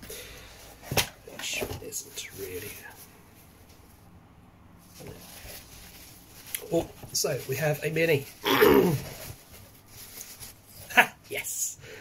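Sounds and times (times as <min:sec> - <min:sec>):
soft rustling of paper packing: 0:00.4 - 0:04.1, 0:04.7 - 0:11.6.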